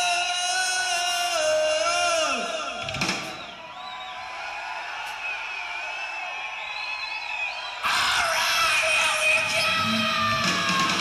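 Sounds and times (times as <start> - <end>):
live heavy metal band: 7.8 - 11.0.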